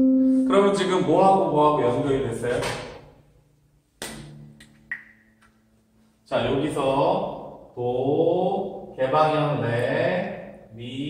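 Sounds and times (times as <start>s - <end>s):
acoustic guitar strings ringing: 0.0s - 1.2s.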